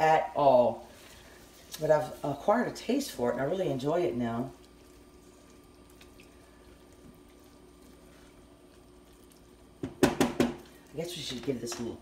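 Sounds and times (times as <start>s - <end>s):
wet stirring in a skillet: 0.7s - 12.0s.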